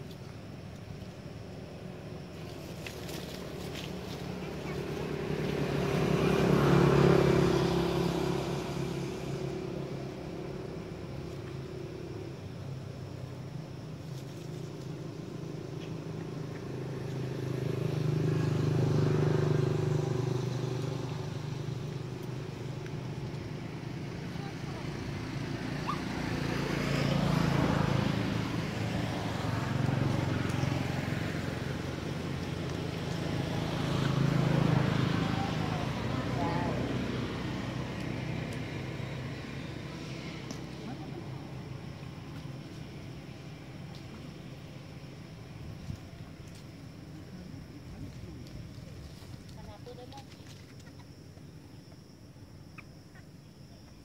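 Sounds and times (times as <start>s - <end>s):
motor vehicles passing: 0.0s - 54.0s.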